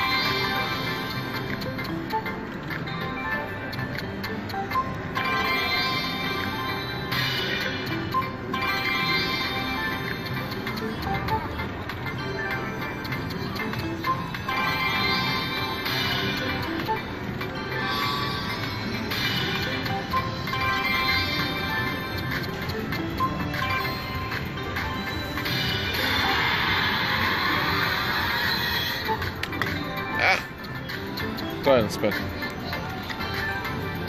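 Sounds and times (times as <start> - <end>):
slot machine electronic music: 0.0 - 34.0.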